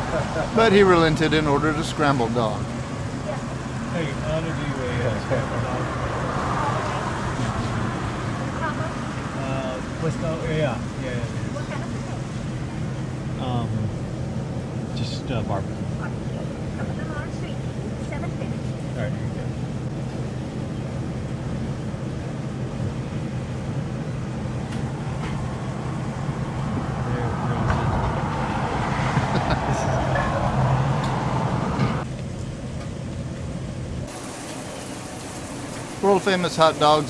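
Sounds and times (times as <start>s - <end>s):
vehicle tyres on wet road: 0.0s - 20.6s, 21.2s - 37.0s
low traffic rumble: 0.0s - 37.0s.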